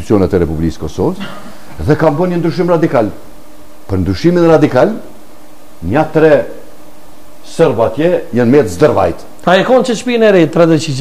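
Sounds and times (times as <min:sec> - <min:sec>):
man speaking: 0:00.0 - 0:03.3, 0:03.9 - 0:05.2, 0:05.8 - 0:06.7, 0:07.4 - 0:11.0.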